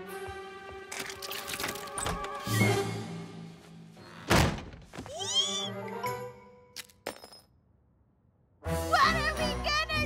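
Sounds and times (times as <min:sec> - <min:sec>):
background music: 0:00.0 - 0:04.4, 0:05.0 - 0:06.9, 0:08.5 - 0:10.0.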